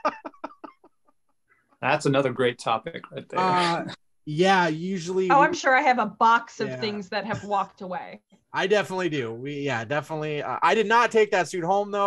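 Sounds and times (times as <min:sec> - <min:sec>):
person laughing: 0:00.0 - 0:01.0, 0:06.6 - 0:07.7.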